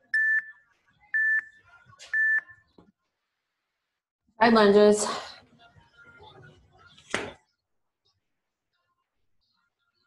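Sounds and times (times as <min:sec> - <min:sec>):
timer beeping: 0:00.1 - 0:00.6.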